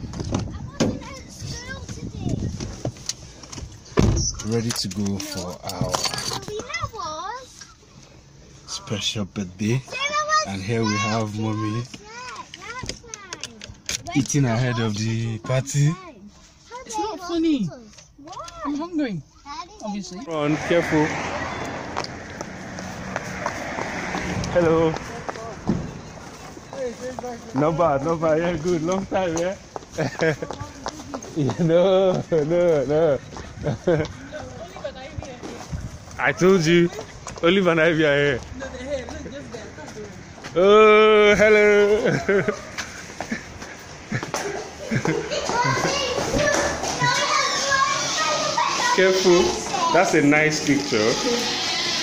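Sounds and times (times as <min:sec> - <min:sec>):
street background noise: 0:00.0 - 0:52.0
children shouting and squealing: 0:16.6 - 0:26.8, 0:40.8 - 0:52.0
footsteps on pavement: 0:21.1 - 0:40.6, 0:42.5 - 0:48.8.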